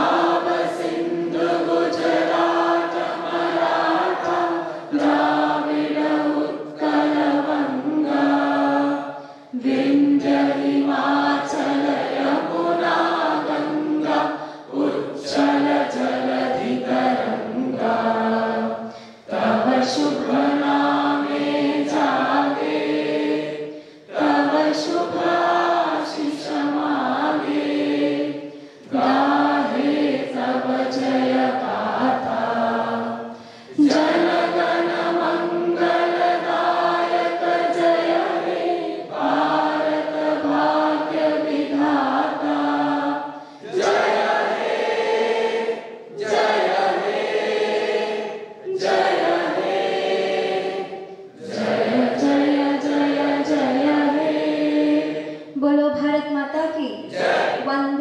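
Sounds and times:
group of students singing: 0.0s - 55.8s, 57.0s - 57.7s.

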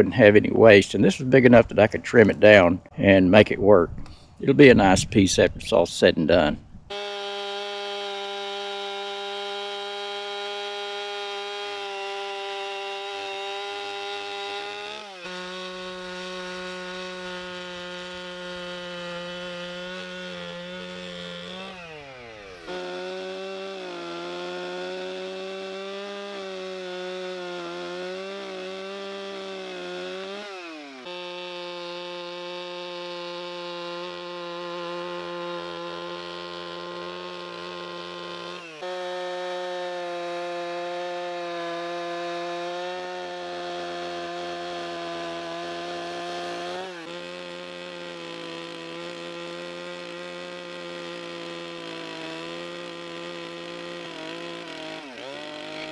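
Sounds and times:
chainsaw cutting log: 0.0s - 2.7s, 6.9s - 55.9s.

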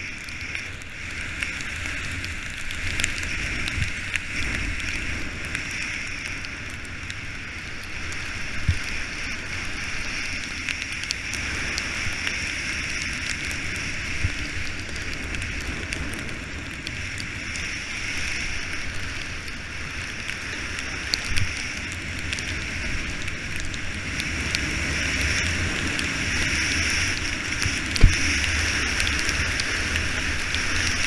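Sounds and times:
skis hissing over snow: 0.0s - 31.0s
small crackles: 0.0s - 31.0s.

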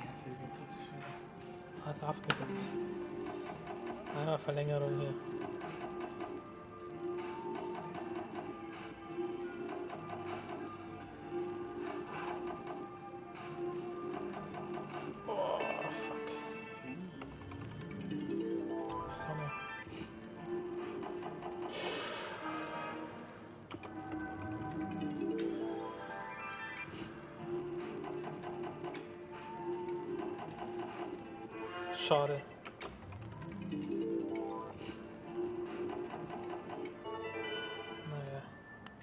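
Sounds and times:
slot machine electronic tune: 2.7s - 32.5s, 33.2s - 39.0s
slot machine electronic jingles: 37.0s - 38.2s.

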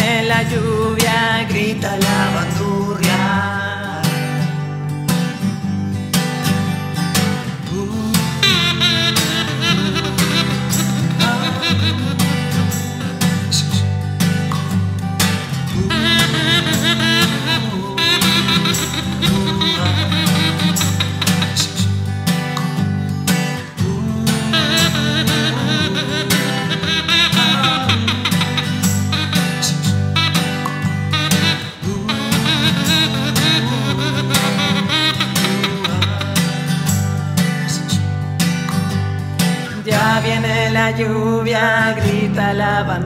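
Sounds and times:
acoustic guitar strumming: 0.0s - 43.0s
wooden whistle melody: 8.4s - 13.1s, 15.8s - 21.9s, 24.4s - 37.0s.

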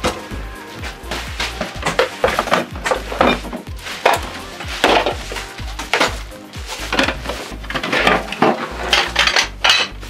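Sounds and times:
hard items clattering into plastic crate: 1.5s - 10.0s.

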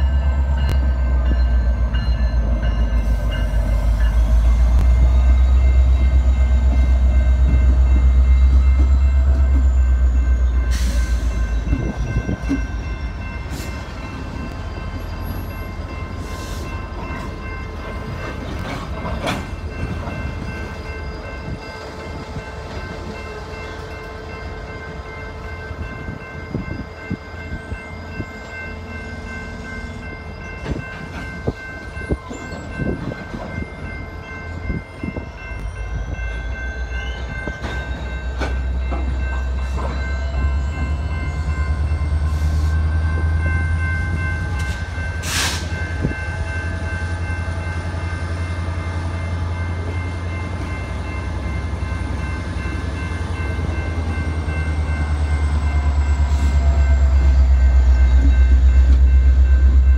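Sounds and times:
train wheels rumbling: 0.0s - 59.9s
rail clicks and knocks: 16.9s - 20.8s, 37.2s - 41.7s.

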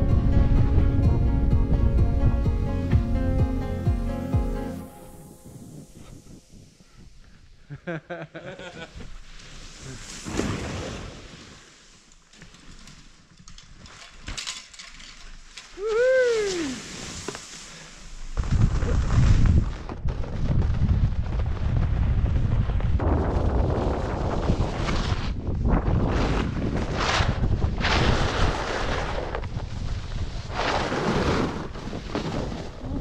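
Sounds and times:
snowboard scraping packed snow: 4.8s - 13.8s, 15.4s - 33.0s
wind buffeting microphone: 18.4s - 33.0s.

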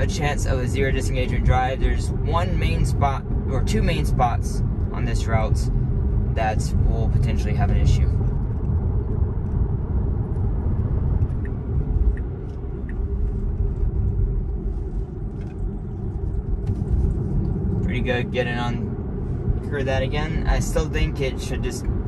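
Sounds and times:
road and tyre rumble in car cabin: 0.0s - 22.0s.

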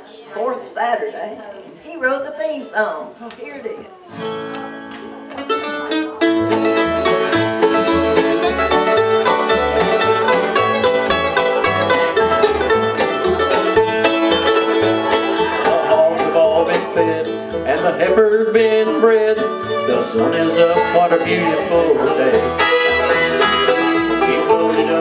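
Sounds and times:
acoustic guitar: 3.0s - 25.0s
fiddle: 4.1s - 25.0s
mandolin: 4.1s - 25.0s
banjo: 4.2s - 25.0s
upright bass: 4.3s - 25.0s.

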